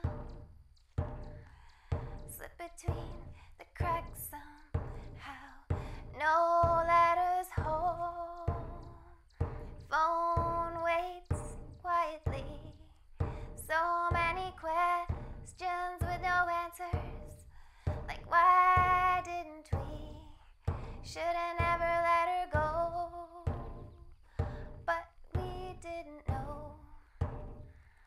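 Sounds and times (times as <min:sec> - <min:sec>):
hand drum beating: 0:00.0 - 0:28.0.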